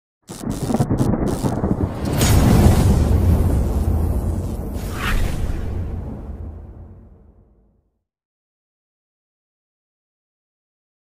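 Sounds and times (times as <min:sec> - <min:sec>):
deep thunder-like rumble: 0:00.3 - 0:07.7.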